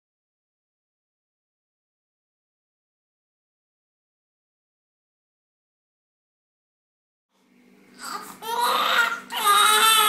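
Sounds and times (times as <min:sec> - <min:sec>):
faint steady hum: 0:07.3 - 0:10.0
baby crying: 0:08.0 - 0:10.0.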